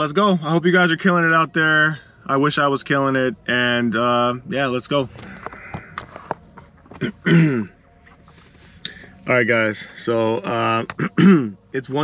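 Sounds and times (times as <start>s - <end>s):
man clearing his throat: 7.0s - 7.8s, 10.9s - 11.6s.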